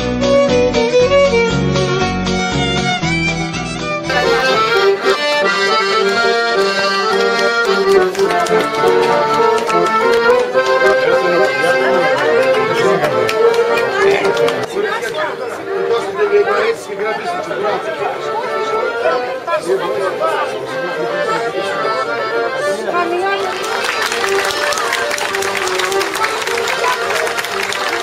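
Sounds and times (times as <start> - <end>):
folk music melody over drone: 3.0 - 28.0
crowd chatter: 3.6 - 28.0.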